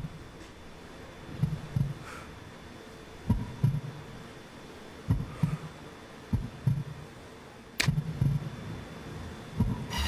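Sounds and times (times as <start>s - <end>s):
faint steady hum: 0.0s - 10.0s
heartbeat thumps: 1.3s - 2.0s, 3.3s - 4.0s, 5.0s - 5.7s, 6.3s - 7.0s, 7.9s - 8.6s, 9.6s - 10.0s.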